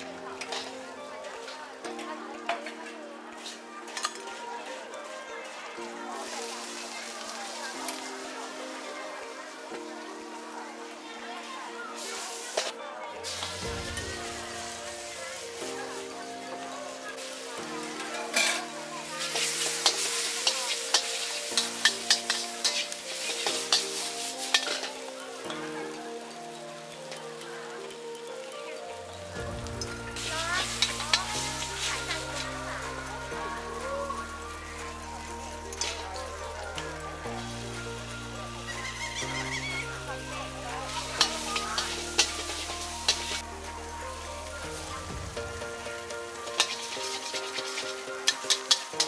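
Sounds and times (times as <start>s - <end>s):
noodles sizzling in a wok: 0.0s - 49.0s
metal spatula scraping wok: 0.4s - 0.8s, 12.0s - 25.5s, 29.8s - 32.9s, 38.5s - 43.5s, 46.3s - 49.0s
spatula clinking against wok: 17.4s - 25.6s, 40.8s - 43.4s, 46.4s - 49.0s.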